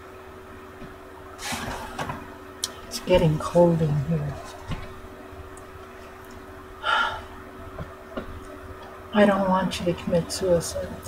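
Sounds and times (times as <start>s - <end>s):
woman gasping: 6.8s - 7.3s.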